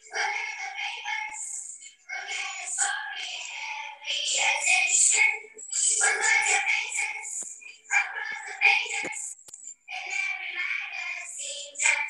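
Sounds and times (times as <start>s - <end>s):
children singing with music: 0.0s - 12.0s.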